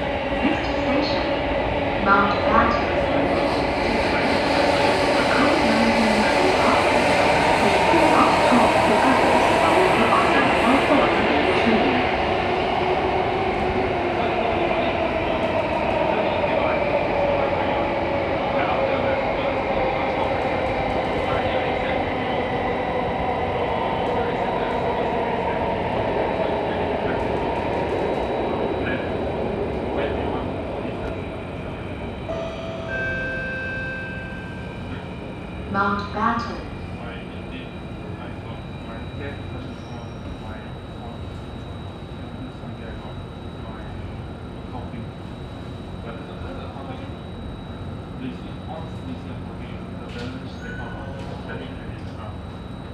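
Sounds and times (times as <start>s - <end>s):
metro train running noise: 0.0s - 52.9s.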